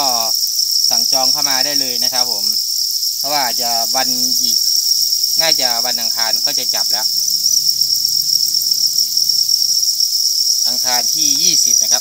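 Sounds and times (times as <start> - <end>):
crickets chirping in chorus: 0.0 - 12.0.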